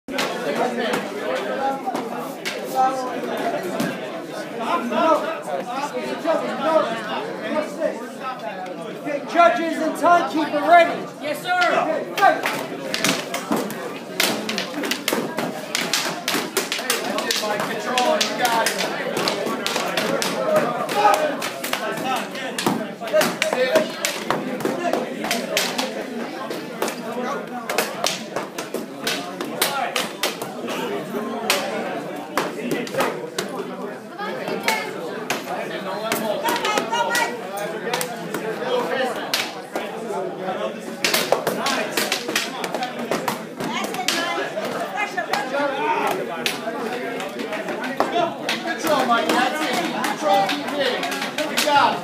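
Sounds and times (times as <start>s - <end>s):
onlookers' voices: 0.0s - 52.0s
people chattering in hall: 0.1s - 52.0s.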